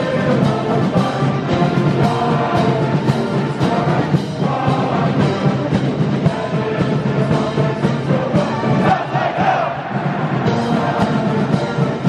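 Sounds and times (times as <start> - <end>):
brass marching band: 0.0 - 12.0
crowd singing: 0.0 - 12.0.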